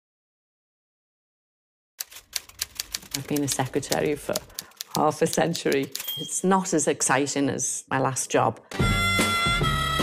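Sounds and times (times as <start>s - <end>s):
typewriter keys striking: 2.0s - 6.2s.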